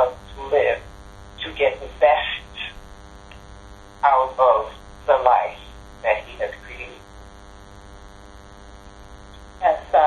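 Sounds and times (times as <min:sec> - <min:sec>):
electrical hum on phone line: 0:00.0 - 0:10.0.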